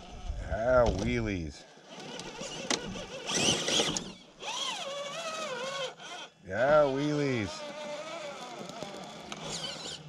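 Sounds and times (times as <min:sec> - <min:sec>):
toy truck electric motor whining: 0:01.8 - 0:10.0.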